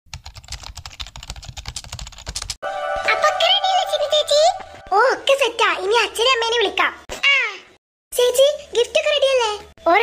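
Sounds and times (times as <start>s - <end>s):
rapid keyboard typing clicks: 0.1s - 2.6s
music with gliding high melody: 2.6s - 5.4s.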